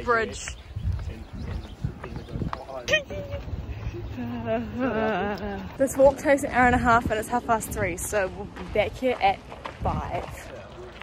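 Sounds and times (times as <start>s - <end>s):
footsteps on wooden deck: 7.7s - 11.0s.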